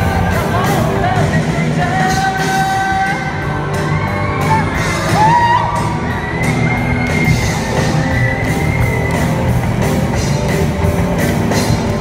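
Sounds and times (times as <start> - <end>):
drums and cymbals: 0.0 - 12.0.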